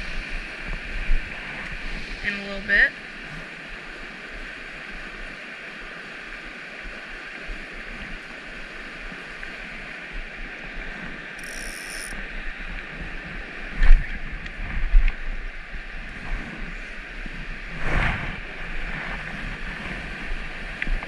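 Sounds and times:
fly reel ratchet buzzing: 0:11.4 - 0:12.2.

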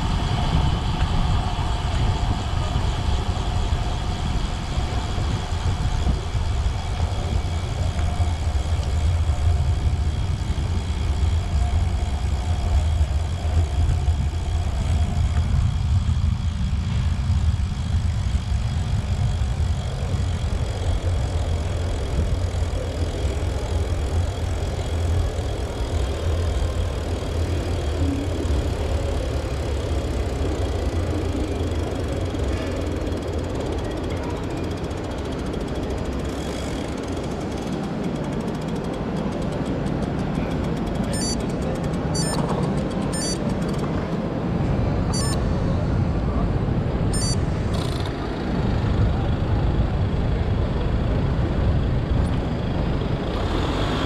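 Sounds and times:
wind rumble: 0:00.0 - 0:53.8
bicycle road vibration: 0:00.0 - 0:54.0
traffic noise: 0:00.0 - 0:54.0.

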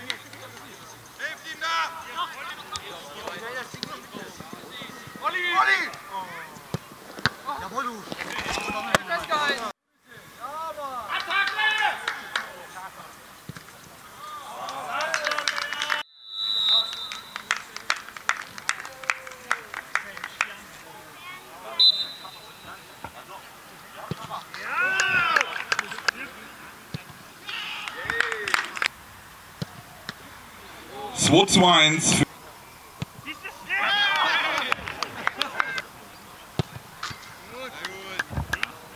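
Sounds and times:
footballers shouting: 0:00.7 - 0:09.7, 0:10.4 - 0:13.1, 0:14.0 - 0:16.0, 0:18.7 - 0:28.9, 0:29.6 - 0:32.4, 0:33.0 - 0:38.9
referee's whistle blasts: 0:16.1 - 0:17.6, 0:21.7 - 0:22.9.

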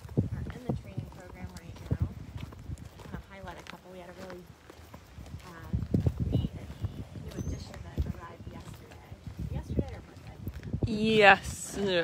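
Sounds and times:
footsteps on gravel: 0:00.0 - 0:10.8.

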